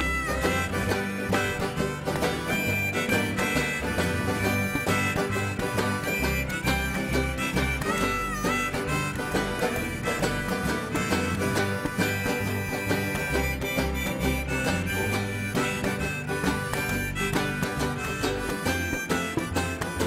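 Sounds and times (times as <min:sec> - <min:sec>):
acoustic guitar: 0:00.0 - 0:20.0
banjo: 0:00.0 - 0:20.0
harmonica melody: 0:00.0 - 0:20.0
upright bass: 0:00.0 - 0:20.0.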